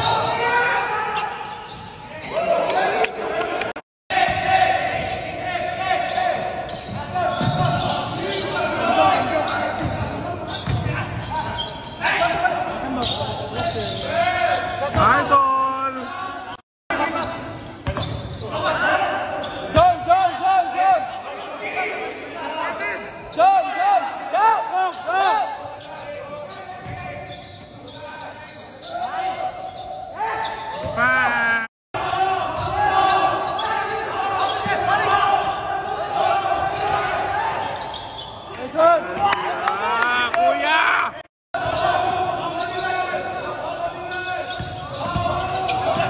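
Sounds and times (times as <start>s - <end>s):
sneakers squeaking: 0.0s - 3.2s, 4.2s - 15.4s, 17.0s - 20.1s, 21.4s - 24.2s, 24.8s - 31.4s, 32.0s - 39.3s, 41.6s - 46.0s
players calling out: 0.0s - 46.0s
basketball bouncing: 9.8s - 11.0s.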